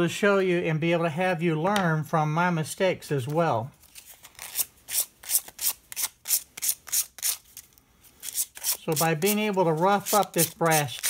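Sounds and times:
sandpaper rubbing on metal tube: 8.2 - 11.0.

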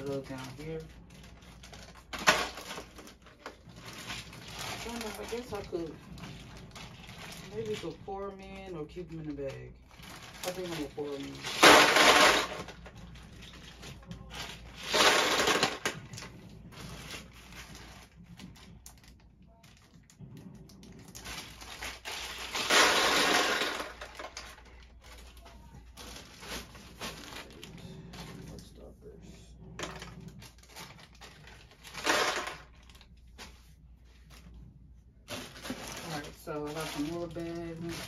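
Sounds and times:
plastic caps poured into drawer: 21.9 - 24.6.

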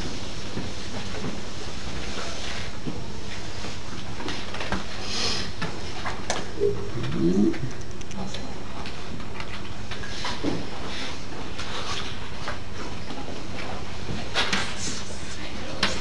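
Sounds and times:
low electrical hum: 0.0 - 16.0
short low pitched sound: 6.6 - 7.8.

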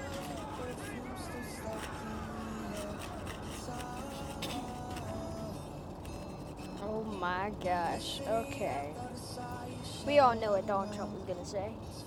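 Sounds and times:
man rapping over a beat: 0.0 - 5.5, 6.9 - 11.7.

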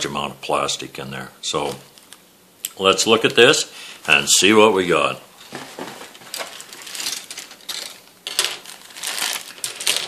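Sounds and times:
plastic bag crinkling: 5.8 - 10.0.

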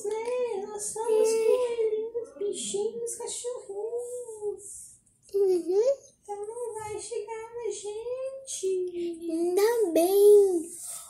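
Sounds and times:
child singing: 0.0 - 3.0.

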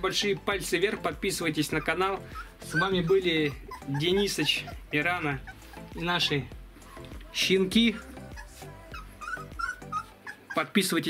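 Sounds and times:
background music: 0.0 - 11.0
puppies whimpering: 0.0 - 11.0.

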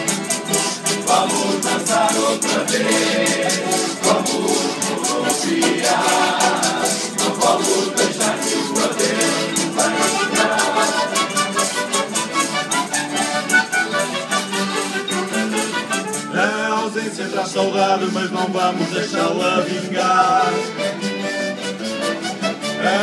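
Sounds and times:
men singing: 0.0 - 12.1, 16.3 - 20.8, 22.8 - 23.0
acoustic guitars strumming: 0.0 - 23.0
piano accordion playing: 0.0 - 23.0.

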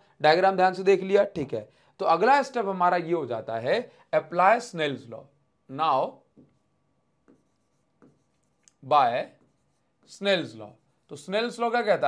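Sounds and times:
stylus tapping on glass screen: 7.2 - 8.4.

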